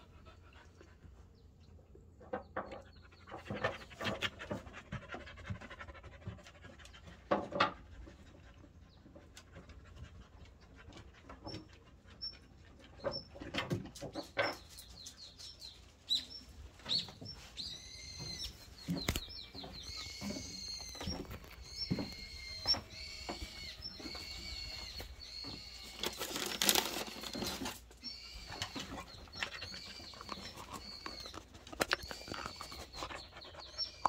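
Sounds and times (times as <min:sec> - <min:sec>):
dog gnawing a hard chew: 0:28.6 - 0:34.0.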